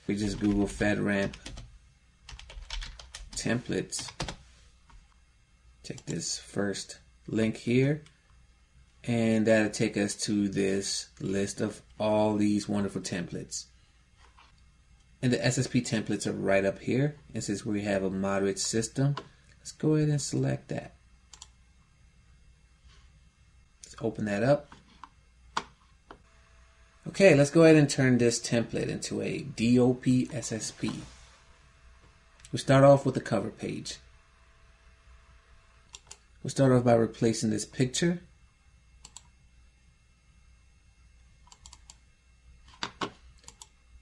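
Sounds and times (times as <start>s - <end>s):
faint low hum: 0.0s - 44.0s
computer mouse click: 21.3s - 21.5s, 35.9s - 36.2s, 39.0s - 39.3s, 41.4s - 42.0s, 43.4s - 43.7s.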